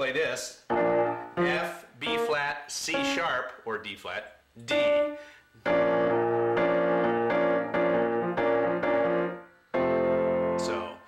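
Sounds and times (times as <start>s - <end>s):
upright piano repeated chords: 0.6s - 3.4s, 4.6s - 11.0s.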